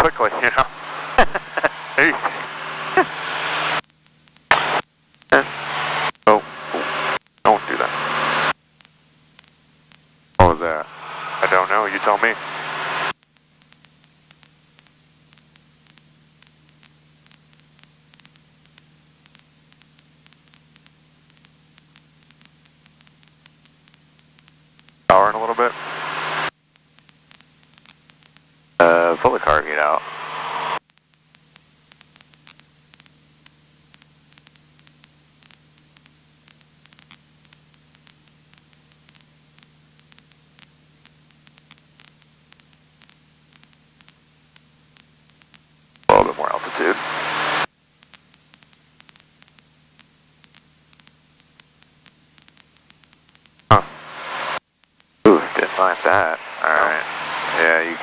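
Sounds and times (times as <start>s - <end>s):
radio-like speech bursts: 0.0s - 3.4s, 4.5s - 8.5s, 10.4s - 13.1s, 25.1s - 26.5s, 28.8s - 30.8s, 46.1s - 47.7s, 55.3s - 58.0s
faint static hiss: 0.0s - 58.0s
steady low hum: 0.0s - 58.0s.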